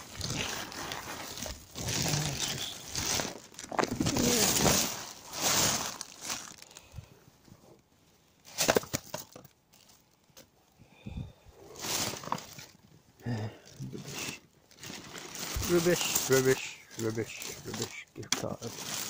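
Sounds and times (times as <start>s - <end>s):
plastic bags rustling: 0.0s - 7.1s, 8.4s - 10.5s, 11.6s - 13.0s, 13.6s - 19.0s
person muttering: 1.8s - 3.1s, 3.8s - 4.9s.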